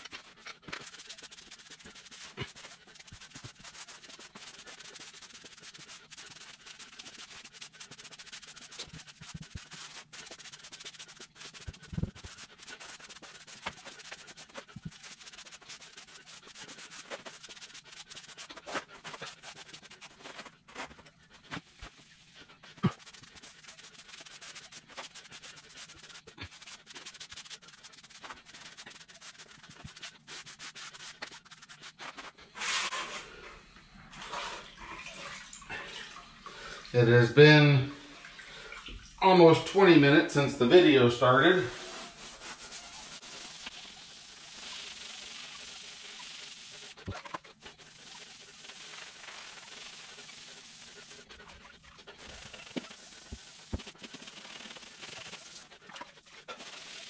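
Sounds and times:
rubber grout float scraping tiles: 0:00.0 - 0:34.7, 0:40.6 - 0:57.0.

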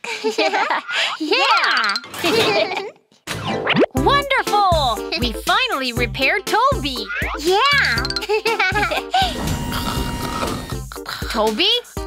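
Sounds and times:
cartoon children exclaiming: 0:07.0 - 0:08.0.

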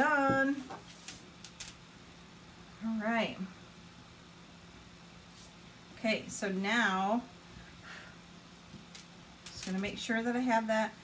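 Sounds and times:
small electric fan hum: 0:00.0 - 0:11.0.

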